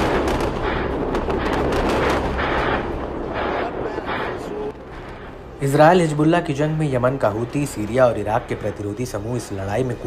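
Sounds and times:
rapid gunshots and blasts: 0.0 - 4.7
steady low rumble: 0.0 - 10.0.

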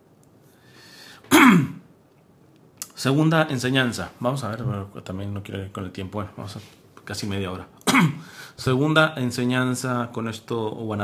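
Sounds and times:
man clearing throat: 1.3 - 1.8, 7.9 - 8.3.

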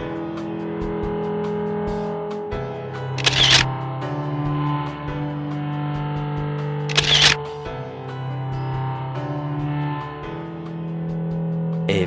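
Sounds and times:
background music sustained notes: 0.0 - 12.0
camera shutter click: 3.2 - 3.7, 6.9 - 7.4.

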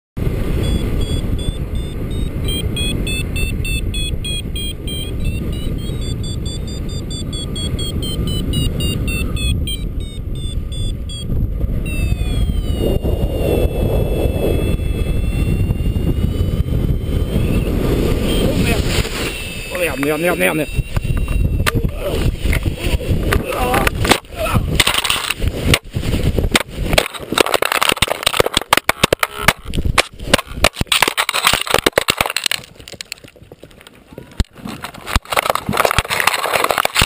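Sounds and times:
wind rush on microphone: 0.2 - 37.0
variometer beeping: 0.6 - 22.1
descending continuous tone: 0.6 - 23.8.

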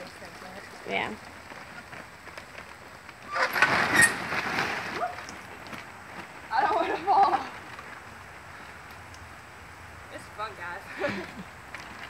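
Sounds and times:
splashing: 0.0 - 8.3
water spray pattering on a tarp: 0.0 - 12.0.

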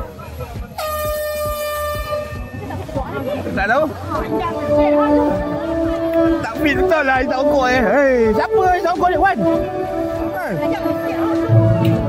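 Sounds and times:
voices: 0.0 - 12.0
air horn blast: 0.8 - 2.7, 4.1 - 12.0.

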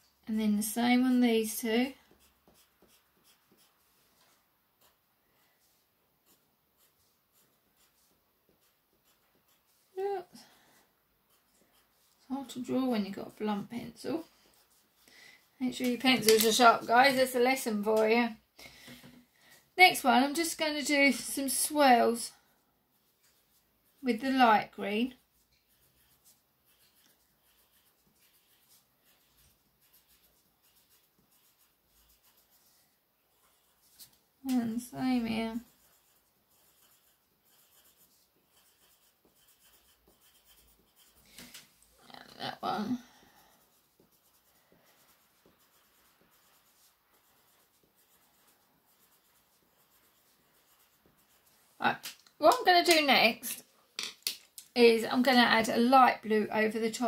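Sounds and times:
pencil scratching on paper: 0.9 - 18.0, 19.9 - 41.5, 42.3 - 51.9.

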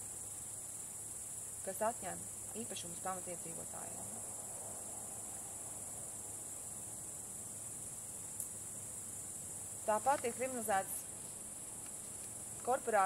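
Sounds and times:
crickets chirping: 0.0 - 13.0.

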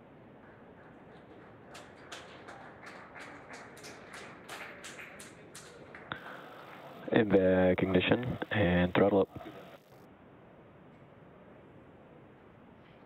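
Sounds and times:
low hiss: 5.9 - 13.0.

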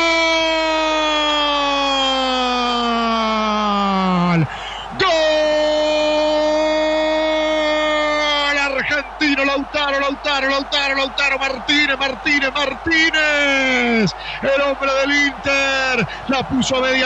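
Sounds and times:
commentator shouting goal: 0.0 - 17.0
commentator rapid speech: 3.6 - 17.0.

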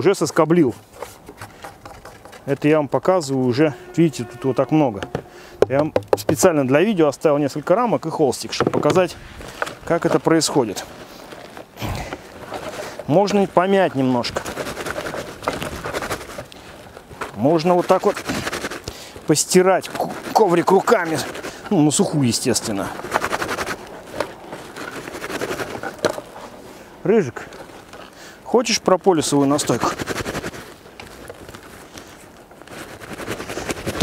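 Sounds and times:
stiff cloth crackling and rustling: 6.4 - 34.0.

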